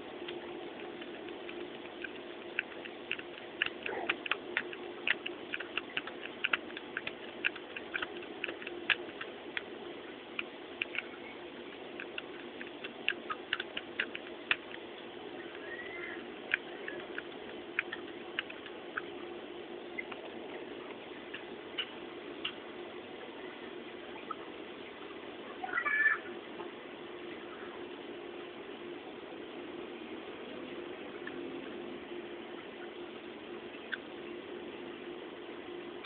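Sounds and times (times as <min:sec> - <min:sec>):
calculator keys clicking: 0:00.2 - 0:09.7, 0:10.3 - 0:14.8, 0:15.5 - 0:19.1.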